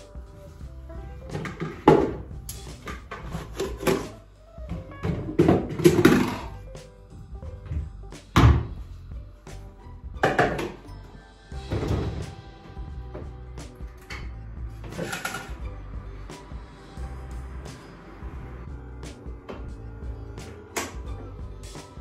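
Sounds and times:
background music: 0:00.0 - 0:22.0
kitchenware knocking and clattering: 0:01.4 - 0:04.1, 0:04.7 - 0:06.5, 0:10.2 - 0:10.8, 0:14.0 - 0:15.6.

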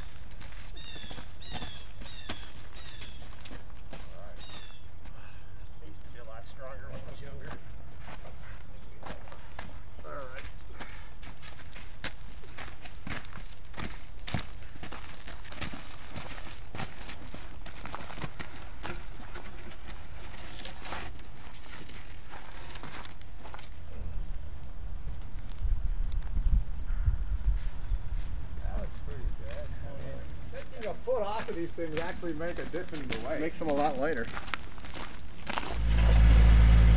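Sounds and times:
footsteps on gravel: 0:00.0 - 0:23.9, 0:28.2 - 0:36.9
wind rumble on microphone: 0:24.0 - 0:29.5.

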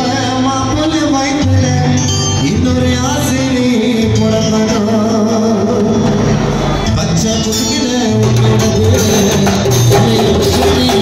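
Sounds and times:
drum kit: 0:00.0 - 0:11.0
keyboard: 0:00.0 - 0:11.0
man singing: 0:00.0 - 0:11.0.

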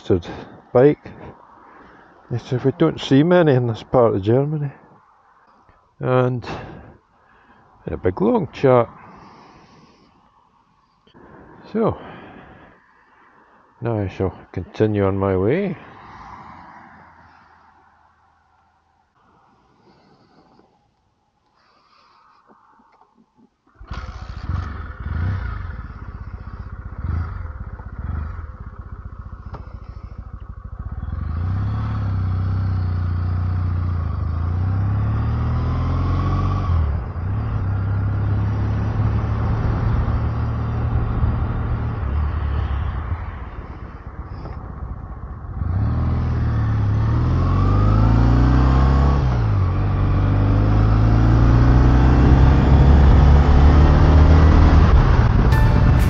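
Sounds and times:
motorcycle engine revving and accelerating: 0:23.8 - 0:43.2, 0:45.5 - 0:55.6
wind rush on microphone: 0:42.4 - 0:46.0.

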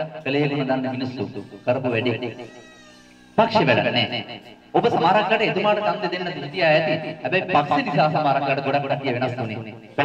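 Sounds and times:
man speaking into a microphone: 0:00.0 - 0:02.5, 0:03.4 - 0:10.0.

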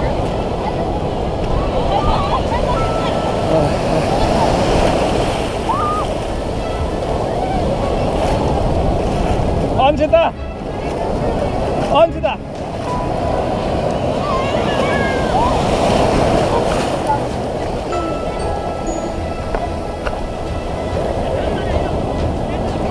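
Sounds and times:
breaking sea surf: 0:00.0 - 0:22.9
muffled water surges: 0:00.0 - 0:22.9.

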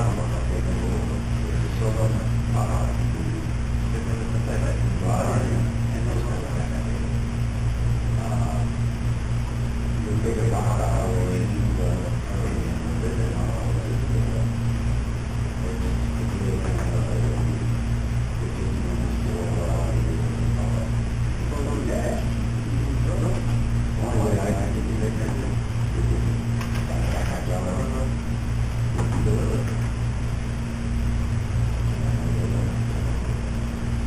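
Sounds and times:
muffled talk: 0:00.0 - 0:07.2, 0:08.1 - 0:08.9, 0:09.9 - 0:14.8, 0:15.4 - 0:28.2, 0:28.9 - 0:29.9, 0:31.8 - 0:33.5
steady low hum: 0:00.0 - 0:34.0.

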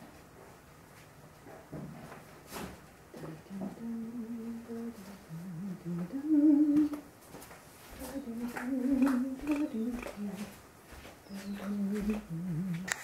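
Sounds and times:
person humming: 0:03.2 - 0:07.0, 0:08.0 - 0:10.6, 0:11.3 - 0:13.0.

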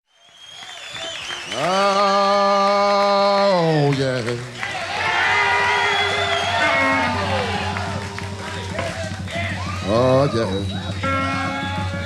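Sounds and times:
live electric blues band: 0:02.7 - 0:12.0
crowd cheering and whooping: 0:04.5 - 0:12.0.

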